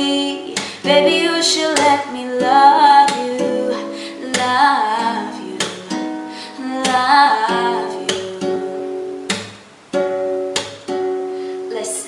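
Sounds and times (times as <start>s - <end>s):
woman singing wordlessly: 0.0s - 9.2s, 11.7s - 12.0s
acoustic guitar strummed: 0.0s - 12.0s.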